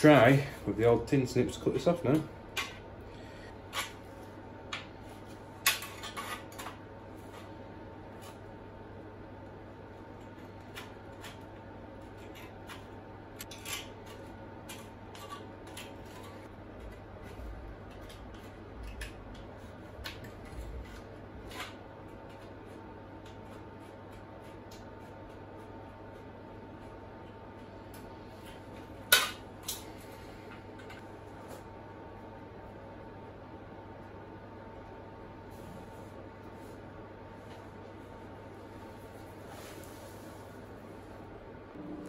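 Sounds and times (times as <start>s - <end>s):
faint steady hum: 0.0s - 42.0s.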